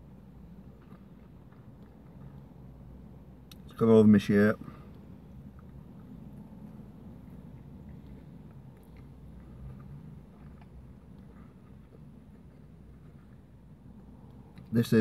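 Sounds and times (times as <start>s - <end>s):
low steady hum: 0.0s - 15.0s
man chewing: 0.4s - 2.9s, 4.9s - 14.7s.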